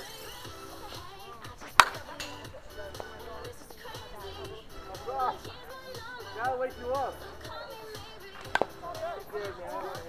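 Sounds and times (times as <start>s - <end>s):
bat cracking against ball: 0.0s - 6.6s, 7.2s - 10.0s.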